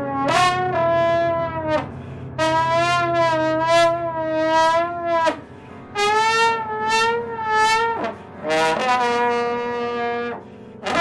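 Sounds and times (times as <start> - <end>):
trombone long high note: 0.0 - 11.0.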